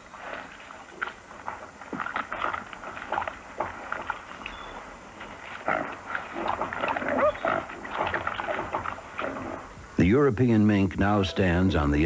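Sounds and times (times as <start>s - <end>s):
boar squealing: 6.8s - 7.7s.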